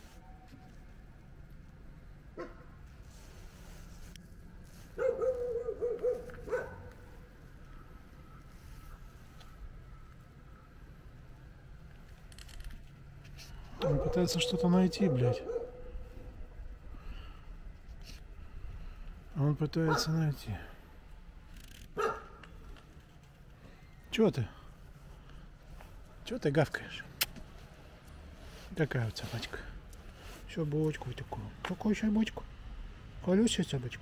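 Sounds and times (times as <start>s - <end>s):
dog barking: 2.4s - 2.7s, 5.0s - 7.0s, 13.8s - 15.9s, 19.9s - 20.2s, 22.0s - 22.4s.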